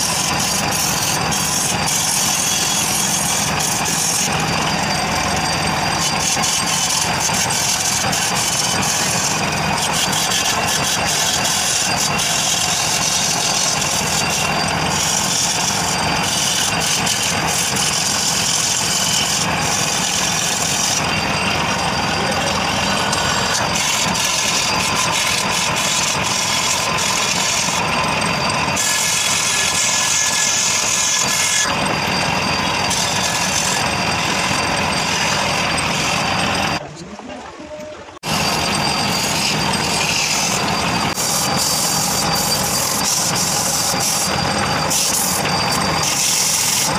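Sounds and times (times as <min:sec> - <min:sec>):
chisel scraping wood: 0:00.0 - 0:36.8
lathe motor hum: 0:00.0 - 0:36.8, 0:38.1 - 0:46.9.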